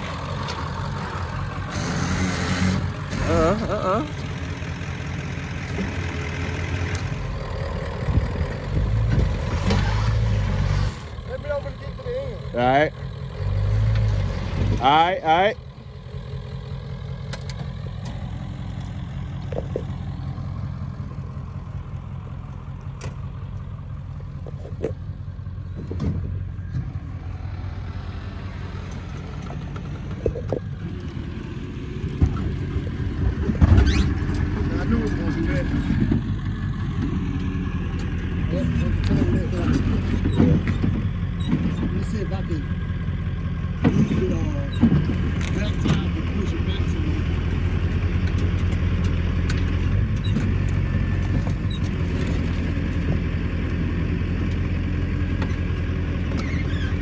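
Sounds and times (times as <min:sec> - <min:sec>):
vehicle engine idling: 0:00.0 - 0:57.0.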